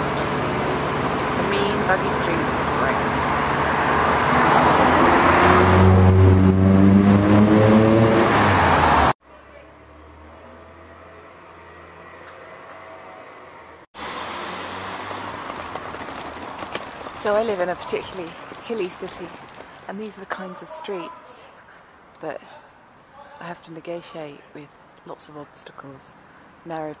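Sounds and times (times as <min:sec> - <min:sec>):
car engine accelerating: 0:00.0 - 0:09.2, 0:14.0 - 0:16.1
cars driving past: 0:00.0 - 0:19.9
street noise: 0:00.0 - 0:27.0.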